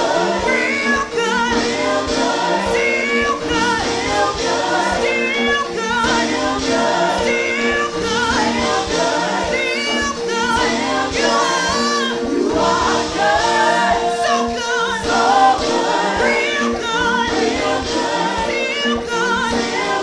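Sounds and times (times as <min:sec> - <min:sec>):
instrumental accompaniment: 0:00.0 - 0:20.0
women singing gospel song: 0:00.0 - 0:20.0.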